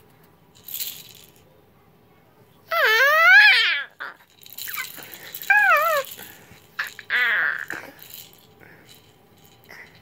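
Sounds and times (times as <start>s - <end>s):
toddler squealing: 2.7s - 4.8s, 5.5s - 6.1s, 6.8s - 7.7s.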